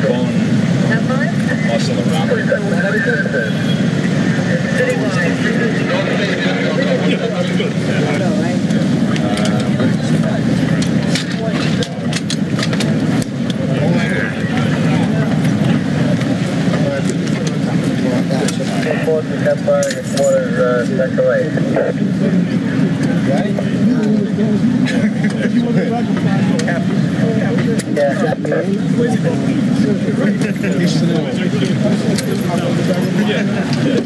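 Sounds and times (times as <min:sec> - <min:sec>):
people talking over one another: 0:00.0 - 0:34.0.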